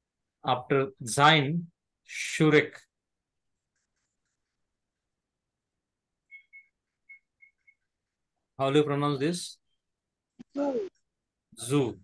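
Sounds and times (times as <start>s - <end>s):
faint high-pitched chirps: 6.2s - 8.0s.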